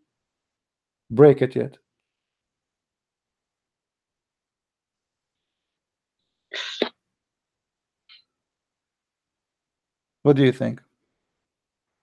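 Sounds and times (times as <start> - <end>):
person sneezing: 6.6 - 6.9.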